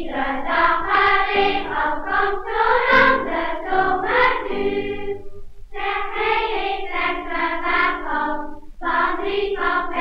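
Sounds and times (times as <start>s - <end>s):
children's choir singing: 0.0s - 10.0s.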